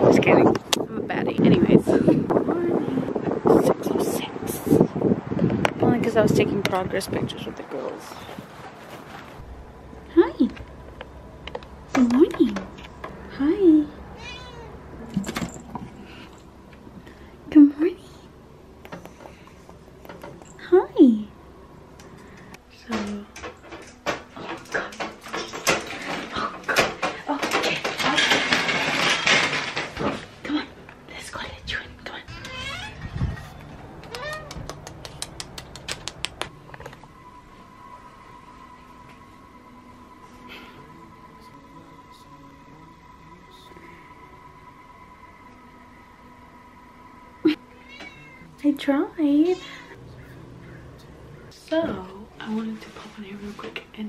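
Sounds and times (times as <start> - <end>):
cat meowing: 14.2 - 14.8, 32.3 - 34.6, 47.6 - 48.5
sharp clicks: 34.0 - 36.5.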